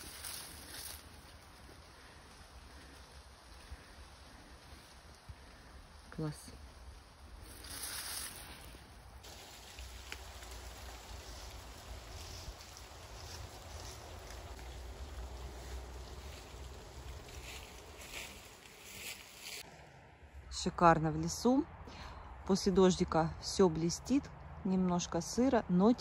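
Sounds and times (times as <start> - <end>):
faint rustles: 0.0 - 20.0
distant road traffic hum: 0.0 - 26.0.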